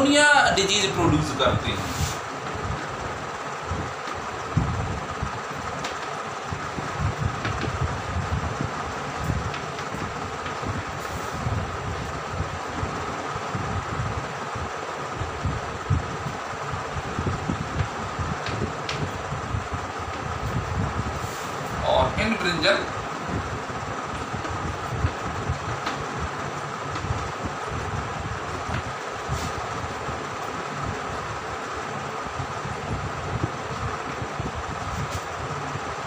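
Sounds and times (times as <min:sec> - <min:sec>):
whirring background hum: 0:00.0 - 0:36.0.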